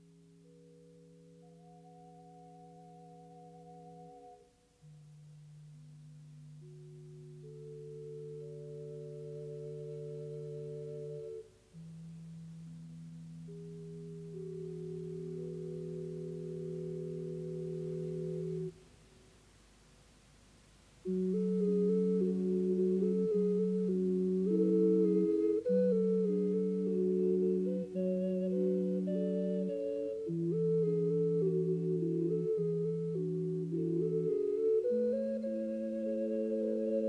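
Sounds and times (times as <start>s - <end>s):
small wind instruments ensemble: 0.0s - 37.0s.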